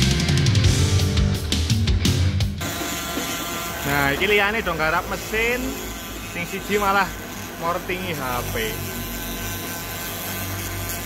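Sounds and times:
rotary grinder grinding plastic: 0:02.6 - 0:11.0.

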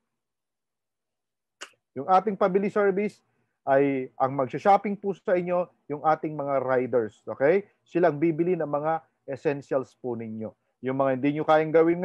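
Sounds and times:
man speaking: 0:02.0 - 0:12.0.

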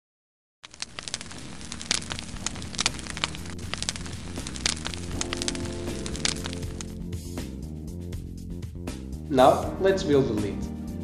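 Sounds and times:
fire crackling: 0:00.6 - 0:07.3.

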